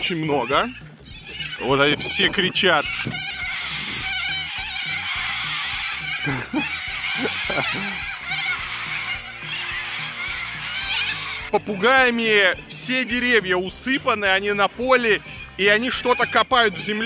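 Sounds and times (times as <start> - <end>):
cockatoos screeching: 0.0 - 17.0.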